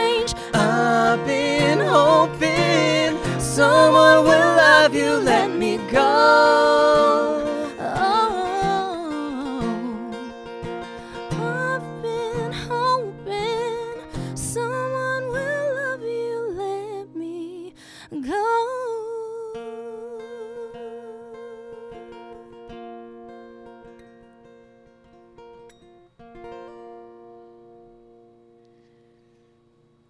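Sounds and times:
person singing long wavering note: 0:00.0 - 0:10.3
acoustic guitar ringing: 0:00.0 - 0:17.0, 0:19.7 - 0:30.0.

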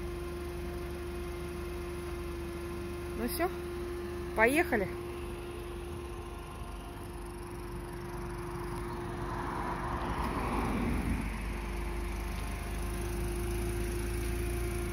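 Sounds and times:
car idling: 0:00.0 - 0:14.9
car passing: 0:05.6 - 0:14.9.

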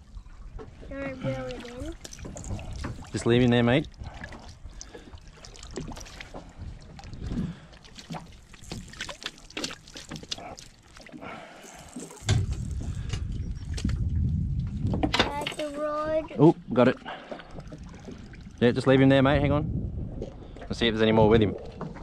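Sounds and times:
low rumble: 0:11.4 - 0:15.2, 0:17.6 - 0:21.5.

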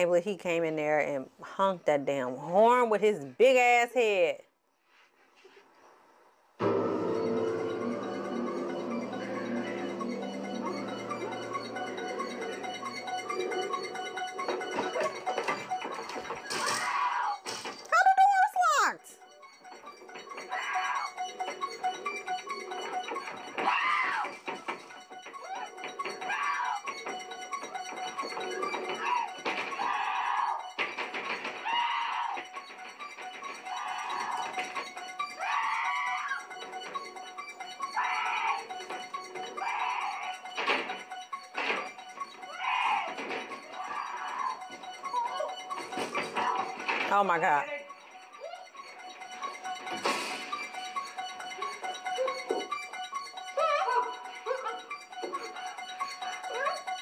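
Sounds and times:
tense background music: 0:06.5 - 0:57.0
sustained synth score: 0:06.6 - 0:16.4
woman shouting for help: 0:17.9 - 0:19.2
long falling cry: 0:23.6 - 0:24.4, 0:35.3 - 0:36.5, 0:37.9 - 0:38.7.

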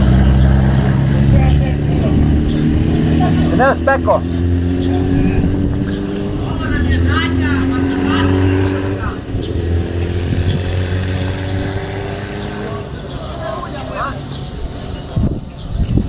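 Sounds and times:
background voices: 0:00.0 - 0:16.0.

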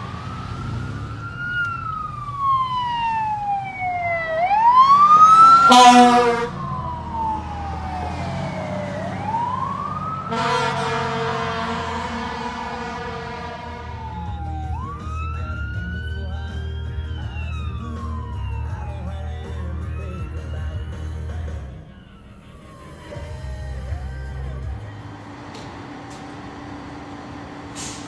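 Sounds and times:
car engine hum: 0:00.0 - 0:28.0
fire engine siren wailing: 0:00.0 - 0:28.0
horn blast: 0:05.2 - 0:06.9, 0:10.0 - 0:15.1.

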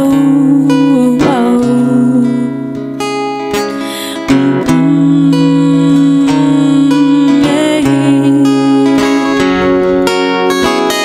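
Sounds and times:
woman singing long notes: 0:00.0 - 0:02.7, 0:04.0 - 0:09.9
acoustic guitar strumming: 0:00.0 - 0:11.0.

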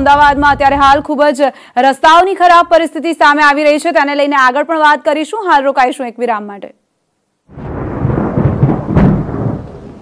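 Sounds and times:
thunder rumble and crack: 0:07.5 - 0:10.0.

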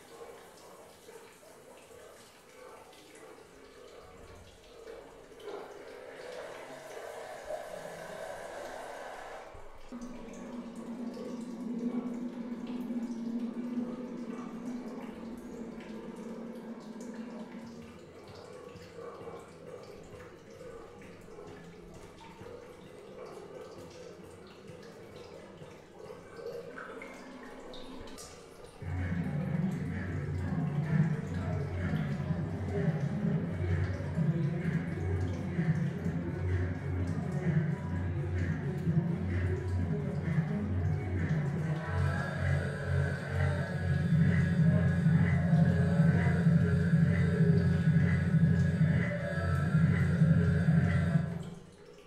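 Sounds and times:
water dripping at a sink: 0:00.0 - 0:52.0
loud low-pitched sound: 0:28.8 - 0:51.5
steady low drone: 0:28.8 - 0:51.5.

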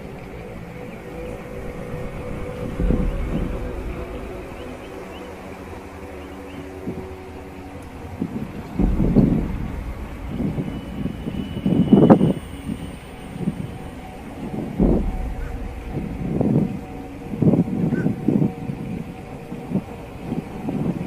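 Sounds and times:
wind buffeting microphone: 0:00.0 - 0:21.0
low steady rumble: 0:01.2 - 0:06.1, 0:07.0 - 0:21.0.

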